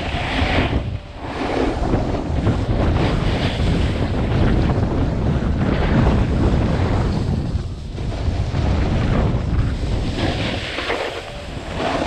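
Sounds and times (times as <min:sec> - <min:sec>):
skis scraping on snow: 0:00.0 - 0:12.0
wind rushing over microphone: 0:00.0 - 0:12.0.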